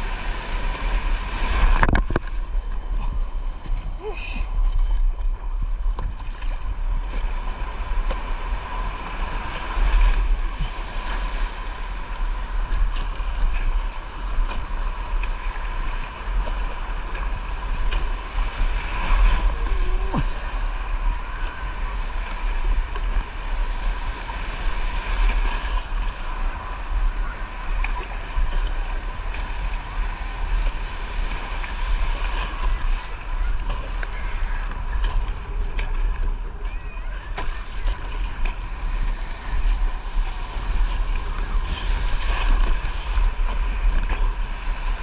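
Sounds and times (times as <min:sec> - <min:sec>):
surf hissing and splashing: 0:00.0 - 0:45.0
wind buffeting microphone: 0:00.0 - 0:45.0.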